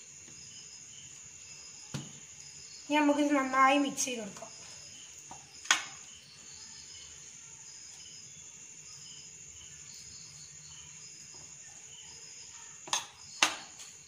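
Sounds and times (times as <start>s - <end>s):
faint high chirps: 4.5s - 14.0s.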